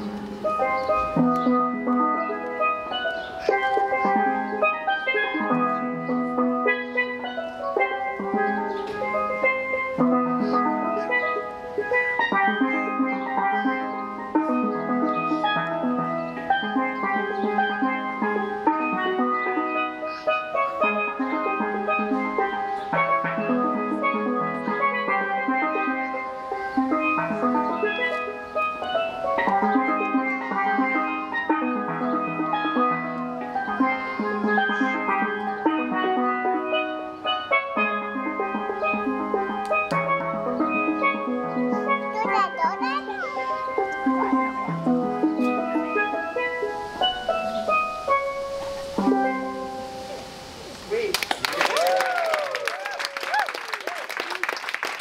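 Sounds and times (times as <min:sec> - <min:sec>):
steel pan playing: 0:00.0 - 0:55.0.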